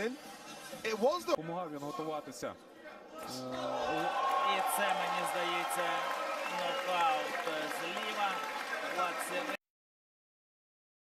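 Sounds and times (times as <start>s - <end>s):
crowd shouting and cheering: 3.2s - 9.6s.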